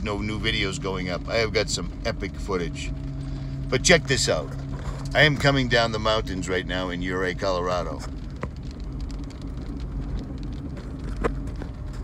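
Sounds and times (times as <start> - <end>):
car driving on gravel: 0.0 - 12.0.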